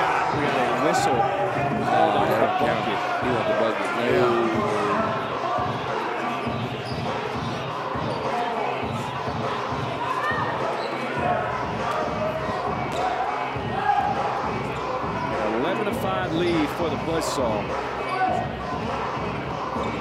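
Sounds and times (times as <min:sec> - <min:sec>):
indistinct echoing voices: 0:00.0 - 0:20.0.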